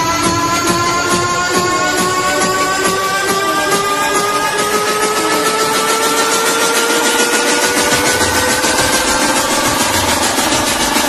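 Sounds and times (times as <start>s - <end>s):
engine-like drone rising in pitch: 0.0s - 11.0s.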